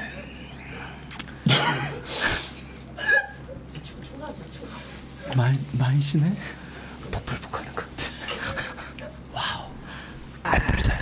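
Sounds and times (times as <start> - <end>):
man coughing and choking: 1.4 - 2.1.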